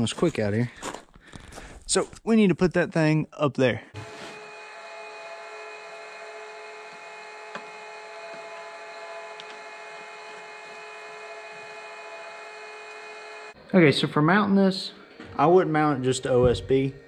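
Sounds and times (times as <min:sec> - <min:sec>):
machine hum: 0:04.0 - 0:13.7.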